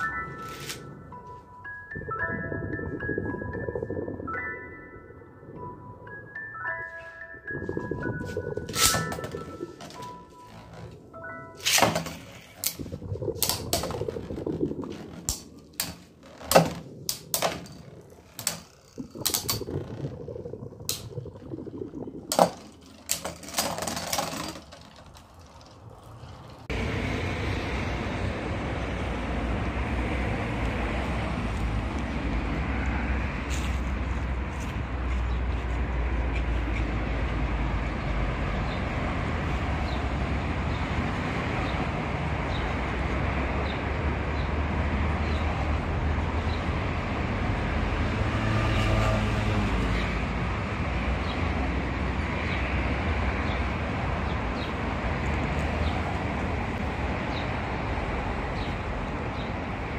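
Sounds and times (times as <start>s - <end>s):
outdoor background rumble: 7.5s - 59.9s.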